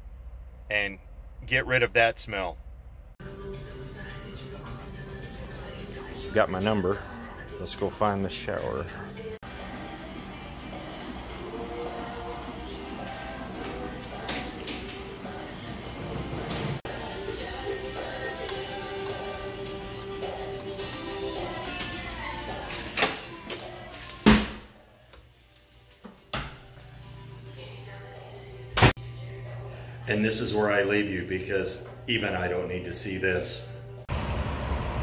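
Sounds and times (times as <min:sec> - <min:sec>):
music playing: 0:03.2 - 0:34.0.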